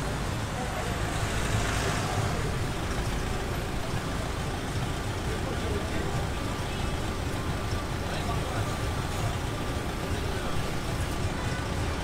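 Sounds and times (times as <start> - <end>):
bus and cars idling: 0.0 - 12.0.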